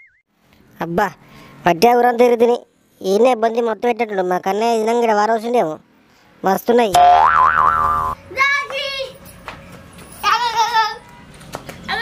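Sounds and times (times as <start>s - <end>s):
comic boing sound effect: 7.0s - 8.2s.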